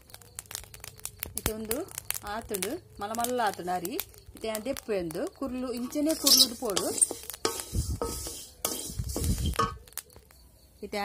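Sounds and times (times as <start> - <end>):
spatula stirring grains in iron pan: 5.6 - 9.8.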